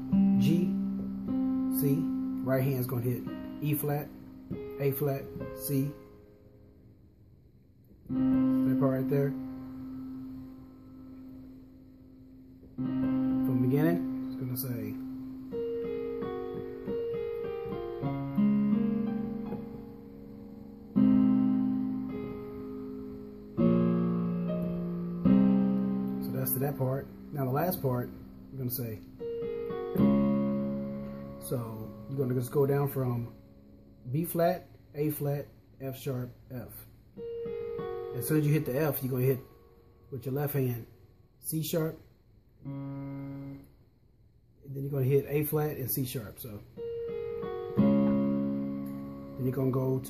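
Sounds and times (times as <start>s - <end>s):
piano chord ringing: 0.0s - 7.2s, 8.0s - 35.3s, 37.1s - 40.8s, 42.6s - 43.8s, 46.7s - 50.0s.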